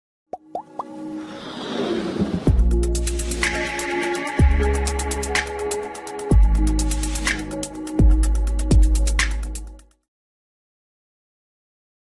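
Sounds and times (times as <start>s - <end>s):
musical backing: 0.5s - 10.0s.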